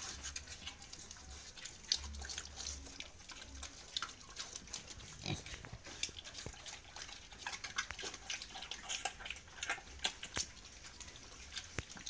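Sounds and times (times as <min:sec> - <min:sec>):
pigs chomping food: 0:00.0 - 0:12.0.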